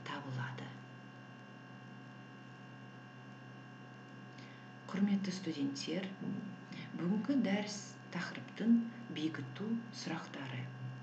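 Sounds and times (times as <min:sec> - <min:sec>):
faint buzzing electrical hum: 0:00.0 - 0:11.0.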